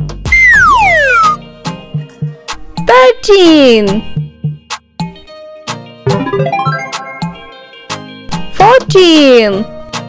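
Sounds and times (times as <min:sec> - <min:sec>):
children's music with beat: 0:00.0 - 0:10.0.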